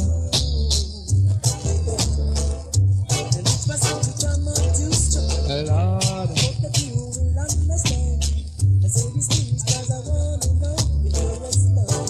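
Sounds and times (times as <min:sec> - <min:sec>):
deep repeating bass line: 0:00.0 - 0:12.0.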